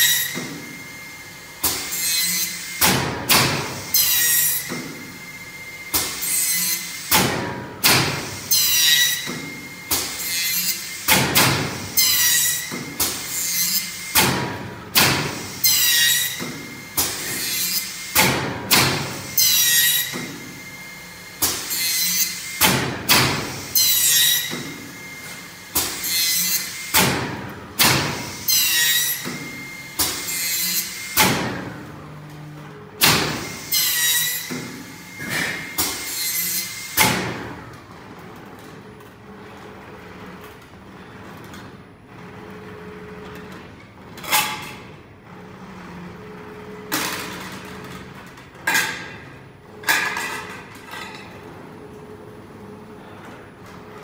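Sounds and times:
machine feed whirring: 0:00.0 - 0:49.9.

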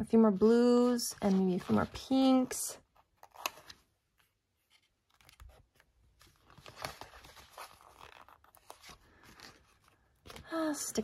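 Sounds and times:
paper sticker sheet rustling: 0:00.2 - 0:11.0.

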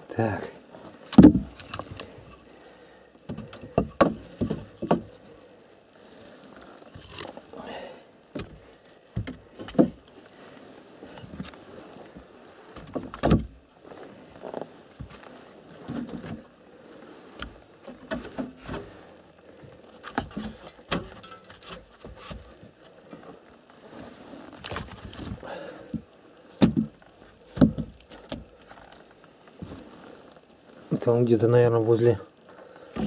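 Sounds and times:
wooden logs knocking and clattering: 0:00.8 - 0:02.6, 0:03.2 - 0:31.1, 0:32.5 - 0:33.0.

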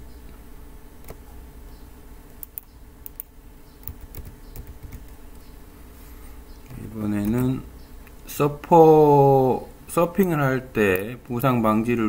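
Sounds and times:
low steady hum: 0:00.0 - 0:12.0
computer control clicks: 0:02.4 - 0:05.0.

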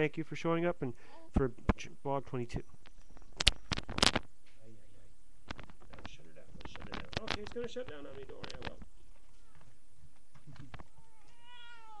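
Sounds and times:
newborn baby crying: 0:10.9 - 0:12.0.

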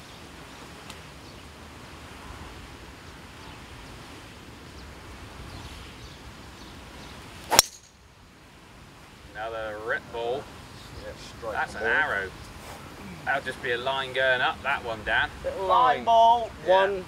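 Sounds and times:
faint outdoor ambience: 0:00.0 - 0:17.0
golf club striking ball: 0:07.5 - 0:08.0.

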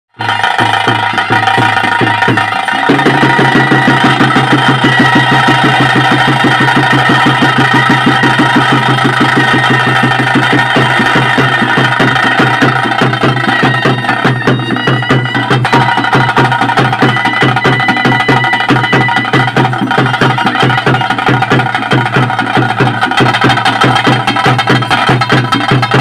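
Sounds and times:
fast drumming: 0:00.2 - 0:26.0
piping wind melody: 0:00.2 - 0:26.0.

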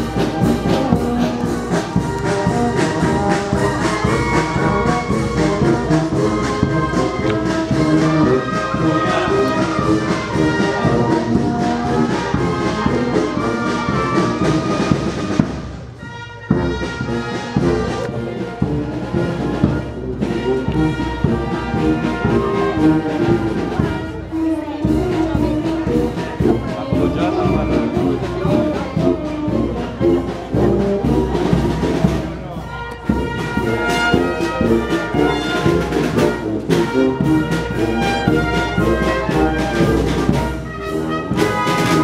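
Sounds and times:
brass band playing: 0:00.0 - 0:42.0.

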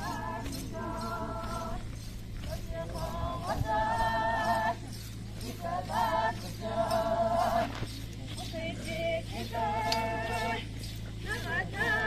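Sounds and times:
women singing folk song: 0:00.0 - 0:12.0.

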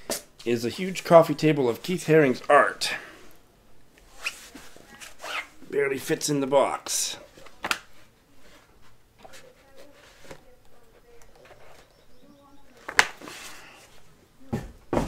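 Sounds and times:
book pages handled: 0:12.8 - 0:13.6.

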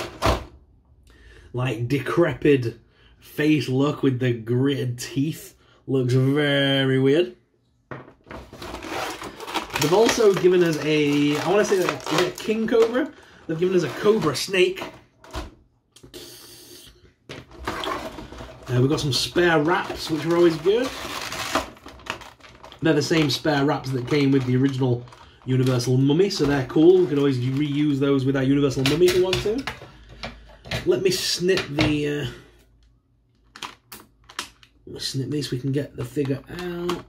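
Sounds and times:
plastic packaging rustling: 0:08.2 - 0:15.5, 0:17.3 - 0:30.1.

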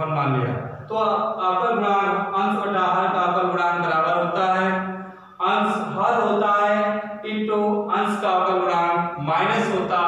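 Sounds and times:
man speaking in sing-song phrases: 0:00.0 - 0:04.6.

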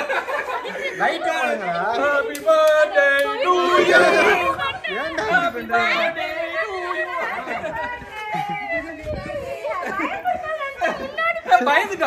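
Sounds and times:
excited group chatter: 0:00.0 - 0:12.0.

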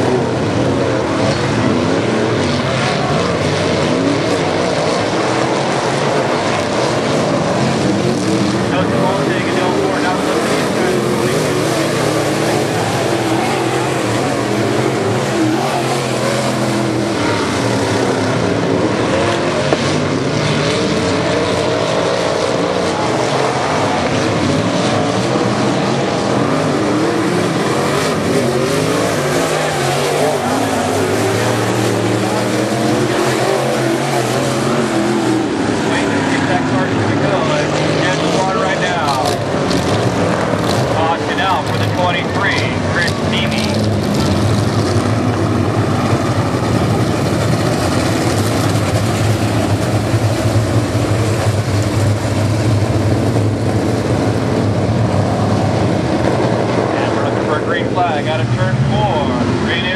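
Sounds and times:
race car engines revving past: 0:00.0 - 0:59.9.

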